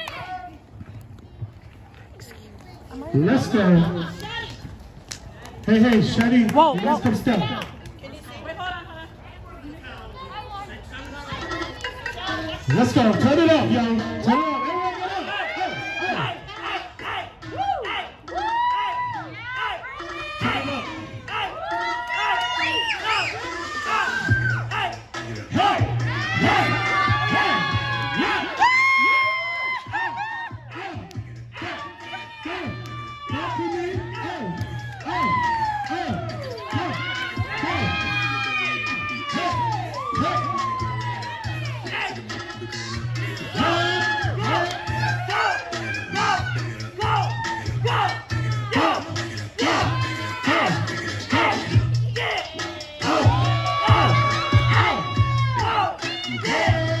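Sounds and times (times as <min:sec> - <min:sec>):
crowd cheering and shouting: 0:00.0 - 0:00.9, 0:11.3 - 0:57.0
hip-hop music over loudspeaker: 0:03.0 - 0:04.4, 0:05.6 - 0:07.8, 0:10.5 - 0:57.0.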